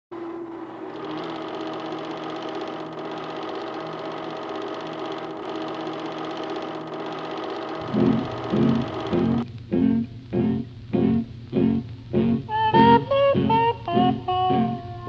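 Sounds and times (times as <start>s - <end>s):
film projector running: 0.6s - 9.4s.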